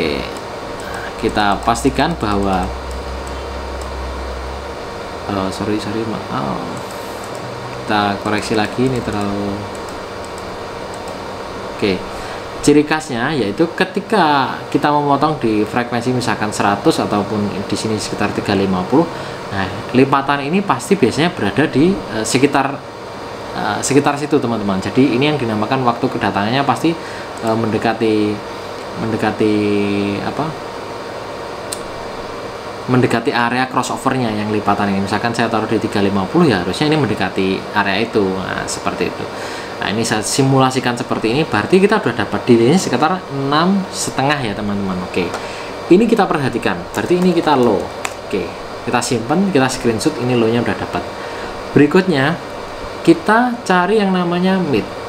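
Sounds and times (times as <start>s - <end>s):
pink noise hiss: 0.0s - 55.0s
strong low hum: 0.0s - 55.0s.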